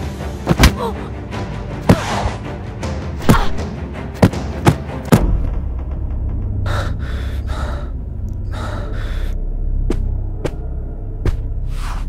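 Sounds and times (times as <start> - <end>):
person breathing hard: 6.6 - 9.4.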